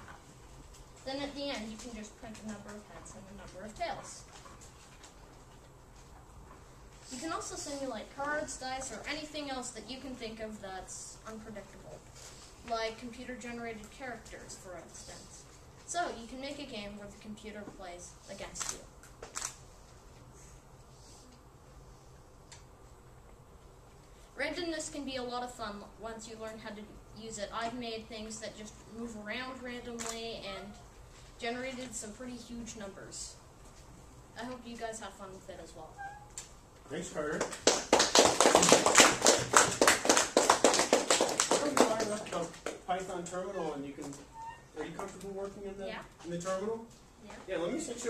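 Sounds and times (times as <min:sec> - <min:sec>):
crowd applauding: 0:37.4 - 0:42.5.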